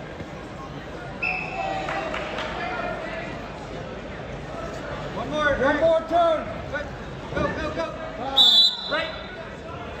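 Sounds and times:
referee's whistle blast: 8.4s - 9.2s.

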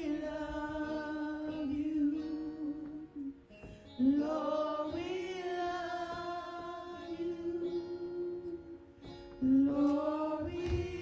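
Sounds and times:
woman singing a slow worship song: 0.0s - 11.0s.

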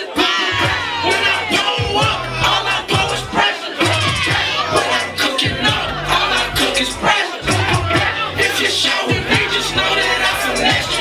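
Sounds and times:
crowd shouting along: 0.0s - 11.0s
loud hip hop music: 0.0s - 11.0s.

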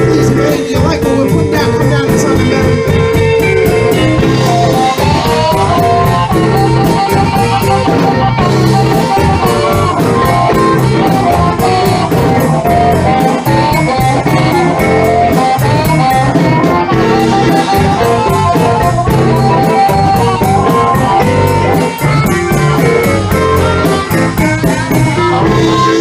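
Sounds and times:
amplified harmonica: 0.0s - 26.0s
bass: 0.0s - 26.0s
drums: 0.0s - 26.0s
electric guitars: 0.0s - 26.0s
piano: 0.0s - 26.0s.

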